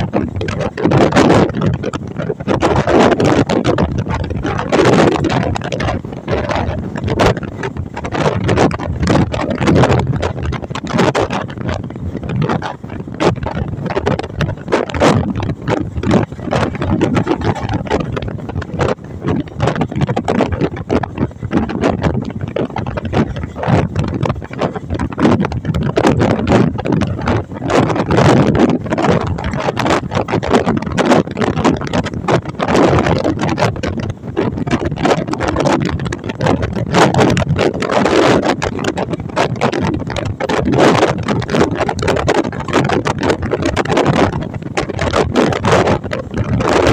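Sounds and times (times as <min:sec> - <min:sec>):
wind: 0:00.0 - 0:46.9.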